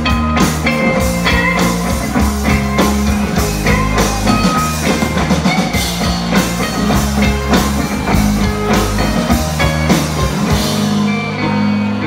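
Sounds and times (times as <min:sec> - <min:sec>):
drum kit beat: 0:00.0 - 0:11.4
bass guitar: 0:00.0 - 0:12.0
electric guitars: 0:00.0 - 0:12.0.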